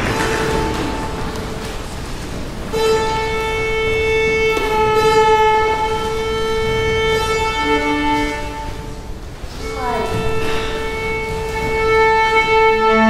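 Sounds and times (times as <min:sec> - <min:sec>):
instrument holding tuning note: 0:02.6 - 0:13.0
low string note: 0:12.6 - 0:13.0.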